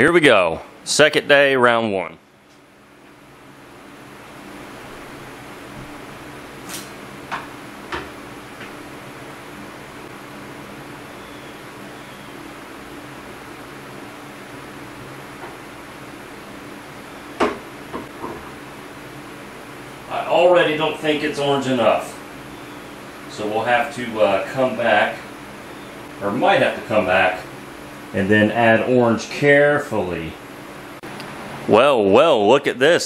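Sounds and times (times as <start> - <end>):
steady shop hum: 0.0 - 33.0.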